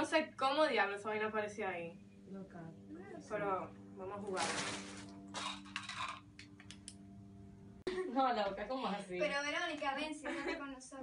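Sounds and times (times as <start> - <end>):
low hum: 0.0 - 10.6.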